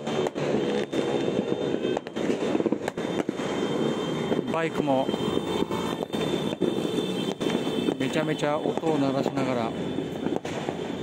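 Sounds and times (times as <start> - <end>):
motorbike engines running: 0.0 - 11.0.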